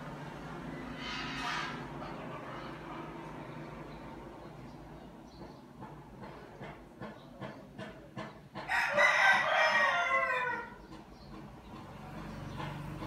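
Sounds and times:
animal cry: 0.9s - 1.9s.

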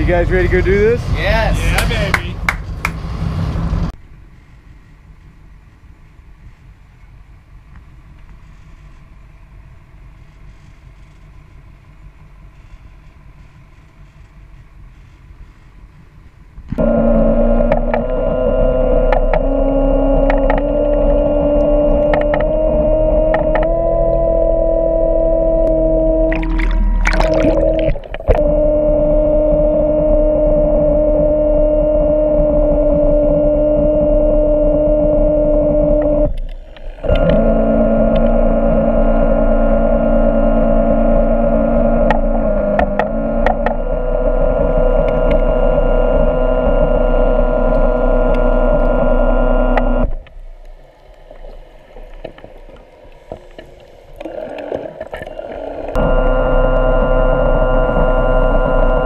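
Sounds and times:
underwater motor whining: 16.4s - 59.0s.

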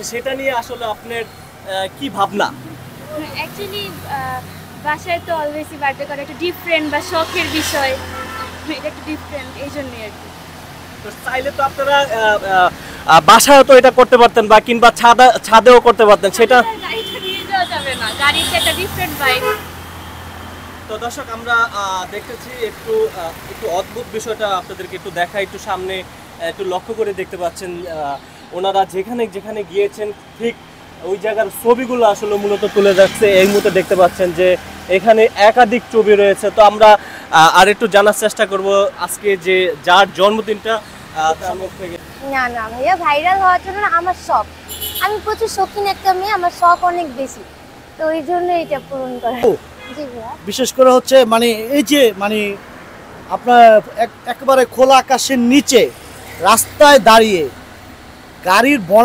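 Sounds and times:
woman speaking: 3.0s - 10.2s, 16.6s - 19.5s, 42.2s - 50.4s.

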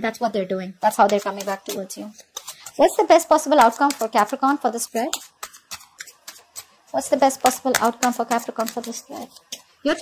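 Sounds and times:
cards shuffling: 1.0s - 9.8s.

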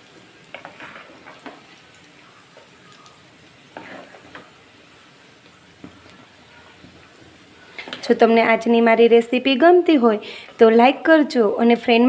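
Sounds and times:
fritters sizzling in hot oil: 0.0s - 12.0s.

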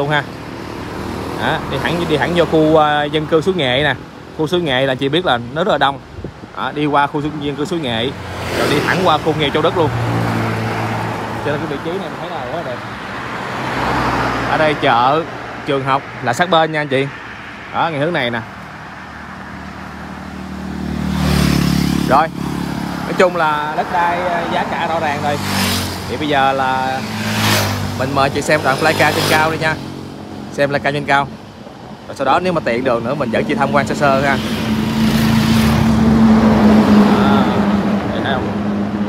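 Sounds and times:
vehicle passing on highway: 0.0s - 39.0s.

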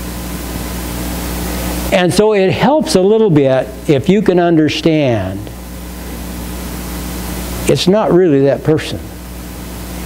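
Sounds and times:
room background hiss: 0.0s - 10.0s.

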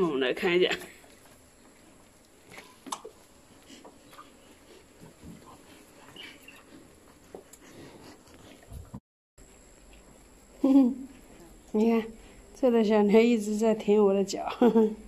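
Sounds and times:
calves suckling wet smacking: 1.0s - 9.0s.

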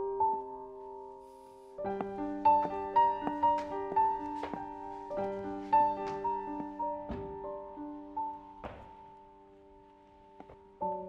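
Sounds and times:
soft piano music: 0.0s - 11.0s
footstep on wooden stair: 1.9s - 7.5s, 8.6s - 9.1s.

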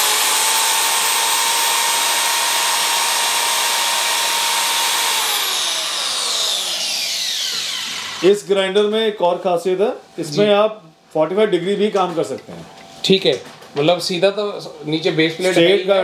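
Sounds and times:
electric cutter motor whining: 0.0s - 8.4s.

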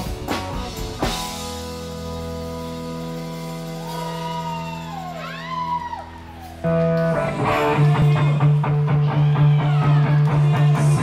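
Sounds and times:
band playing amplified chord: 0.0s - 11.0s.

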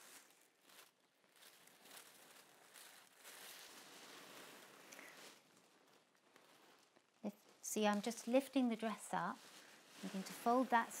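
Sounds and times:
fabric and tissue paper rustling: 0.0s - 11.0s.

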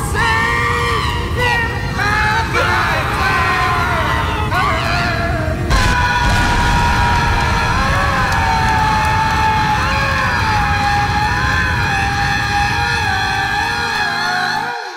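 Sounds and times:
dense low rumble: 5.7s - 13.4s.

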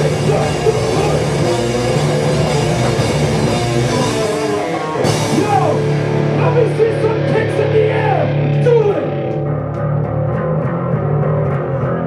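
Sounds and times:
falling sliding guitar notes: 0.0s - 12.0s
live hardcore band playing: 0.0s - 12.0s.

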